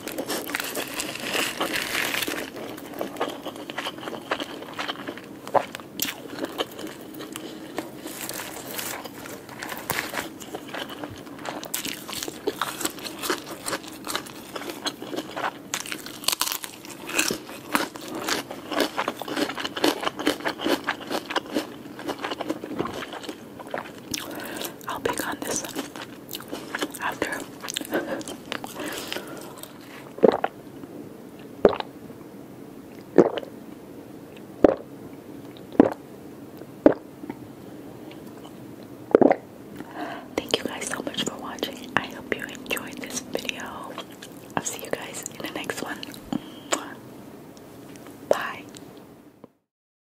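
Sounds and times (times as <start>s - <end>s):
close chewing with mouth smacks: 0.0s - 30.5s
food crackling while chewed: 0.0s - 30.6s, 38.0s - 47.0s
wet chewing mouth clicks: 35.5s - 36.0s.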